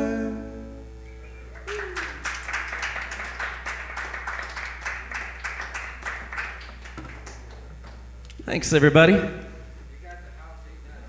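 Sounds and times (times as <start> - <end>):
audience clapping: 1.5 - 8.1.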